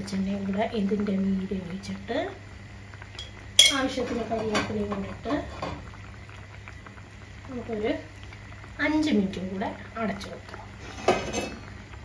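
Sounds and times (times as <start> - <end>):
spoon clinking on cookware: 3.2 - 3.9.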